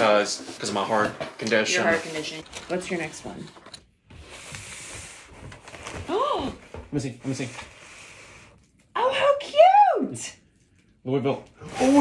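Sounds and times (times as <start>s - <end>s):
cardboard box rustle and scrape: 0.0s - 3.4s.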